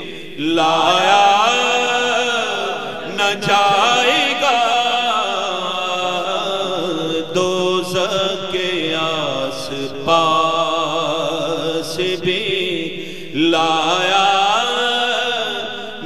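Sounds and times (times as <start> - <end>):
man singing unaccompanied: 0.0 - 16.0.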